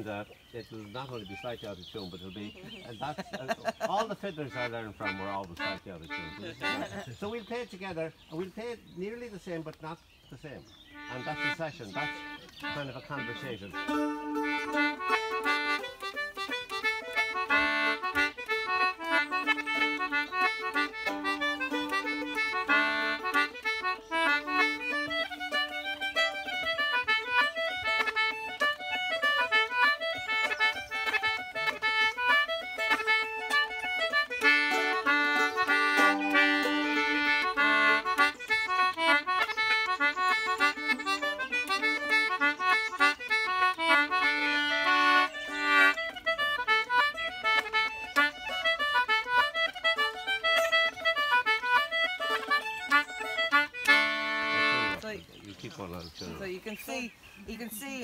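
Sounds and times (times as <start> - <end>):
concertina playing a folk tune: 0.0 - 58.0.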